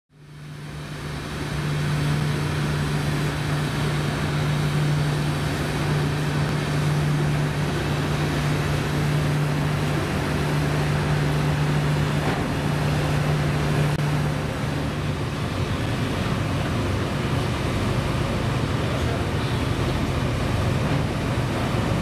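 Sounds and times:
ship engine humming: 0.1 - 22.0.

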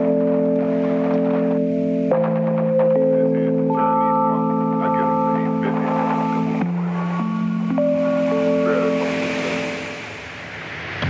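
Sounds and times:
lo-fi hip hop instrumental: 0.0 - 9.9.

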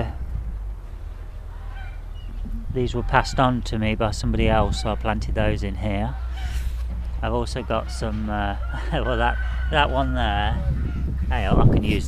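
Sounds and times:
low steady rumble: 0.0 - 12.0
honking bird call: 0.9 - 3.7, 4.4 - 12.0.

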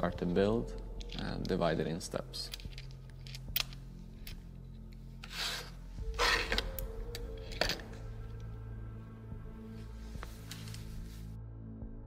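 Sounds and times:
background music low tone: 0.0 - 12.0
rustling of small parts: 0.8 - 8.0.

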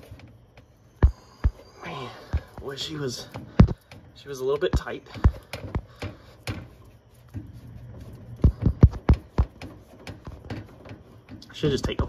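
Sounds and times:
metallic knocks and taps: 3.3 - 7.5, 8.4 - 12.0.

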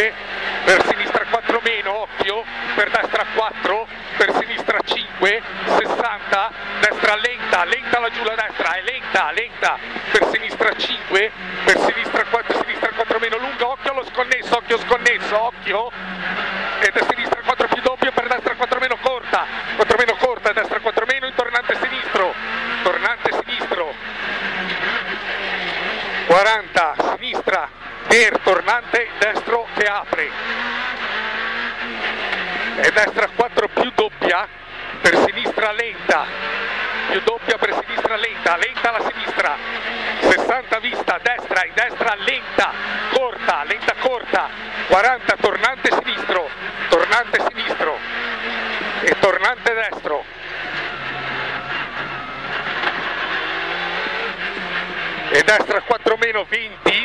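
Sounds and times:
rally car engine running hard: 0.0 - 57.0.

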